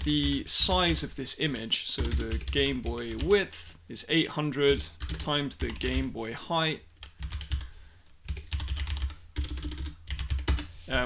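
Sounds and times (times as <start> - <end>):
typing on computer keyboard: 0.0 - 3.4, 4.7 - 6.1, 7.0 - 7.7, 8.3 - 10.7.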